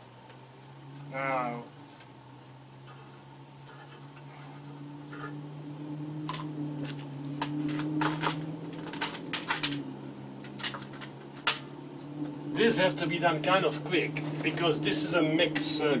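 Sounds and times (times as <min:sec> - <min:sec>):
steady low hum: 0:00.0 - 0:16.0
metal parts clinking in metal dish: 0:06.3 - 0:06.5.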